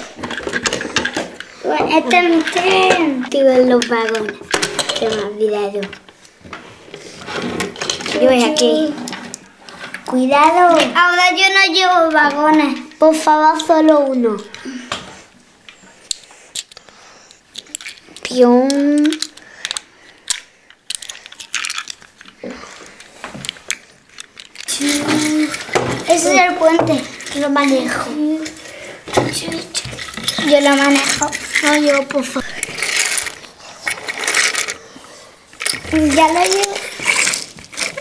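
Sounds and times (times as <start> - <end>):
hands handling plastic toys: 0.0 - 38.0
toy train rattling on tiles: 17.5 - 22.3, 24.1 - 34.8, 35.5 - 38.0.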